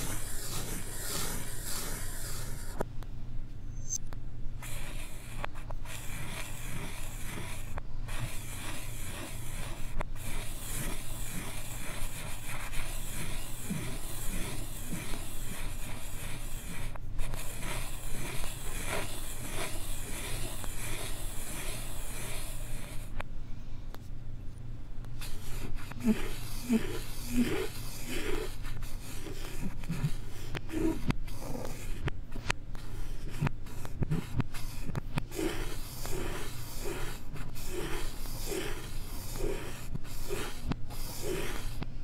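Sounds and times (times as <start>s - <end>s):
reversed chalk scribbling on blackboard: 0.0s - 2.8s, 4.6s - 23.2s, 25.2s - 42.0s.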